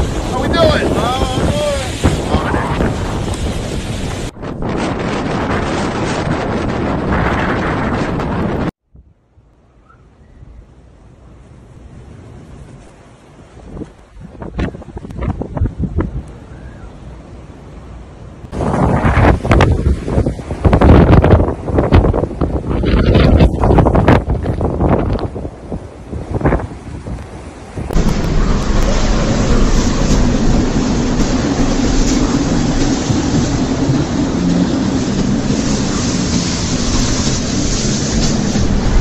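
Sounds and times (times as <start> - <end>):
blizzard wind gusting: 0.0 - 8.8, 10.2 - 39.0
wind buffeting microphone: 0.0 - 9.2, 11.2 - 17.3, 18.4 - 39.0.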